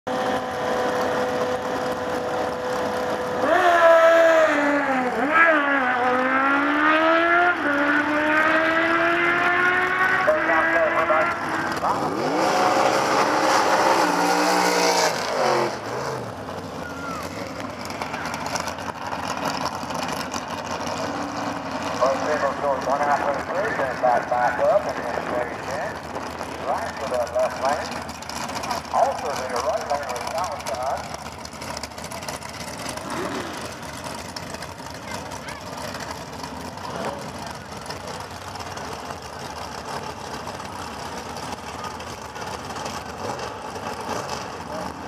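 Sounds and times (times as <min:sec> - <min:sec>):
drag racing car engines revving: 0:00.1 - 0:45.0.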